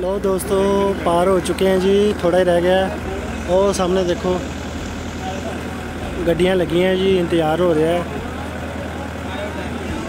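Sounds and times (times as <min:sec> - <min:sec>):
boat engine humming: 0:00.0 - 0:10.0.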